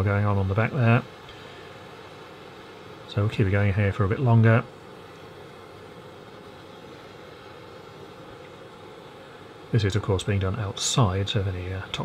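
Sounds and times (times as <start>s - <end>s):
gas torch hissing: 0.0s - 12.0s.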